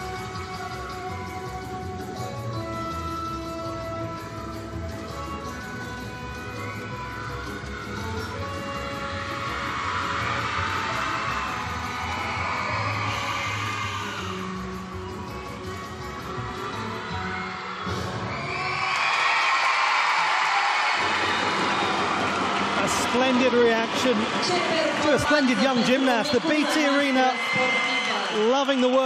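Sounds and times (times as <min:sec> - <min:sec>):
gymnastics accompaniment music: 0:00.0 - 0:18.8
crowd cheering and applauding: 0:00.0 - 0:29.0.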